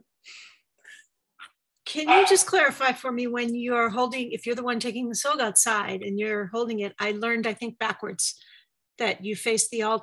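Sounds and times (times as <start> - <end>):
woman speaking: 1.8 - 8.4.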